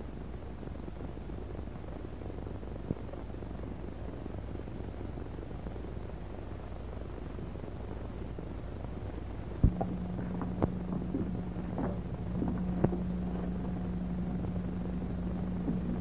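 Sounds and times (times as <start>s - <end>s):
film soundtrack hiss and hum: 0.0s - 16.0s.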